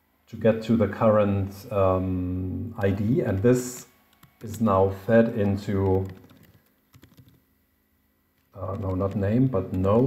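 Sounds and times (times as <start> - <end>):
faint keyboard keystrokes: 5.2 - 7.4, 8.4 - 10.0.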